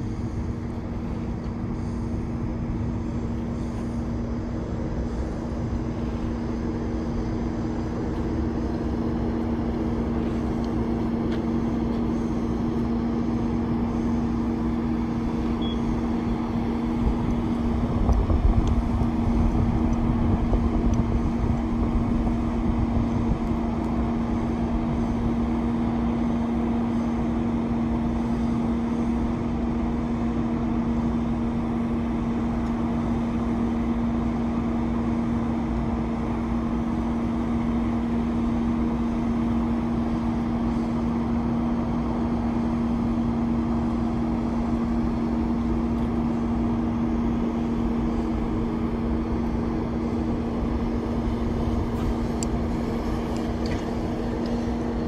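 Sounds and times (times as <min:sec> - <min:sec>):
heavy vehicle engine droning: 0:00.0 - 0:55.0.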